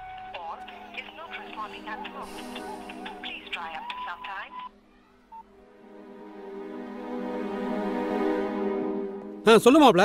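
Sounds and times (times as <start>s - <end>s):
soft background music: 0.0s - 10.0s
person speaking: 0.2s - 4.6s.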